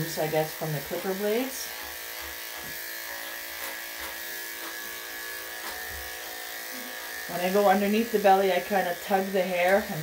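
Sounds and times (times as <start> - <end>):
electric clippers humming: 0.0 - 10.0.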